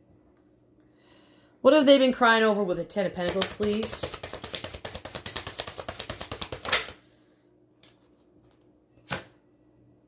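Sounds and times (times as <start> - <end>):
cards being shuffled: 3.2 - 7.0.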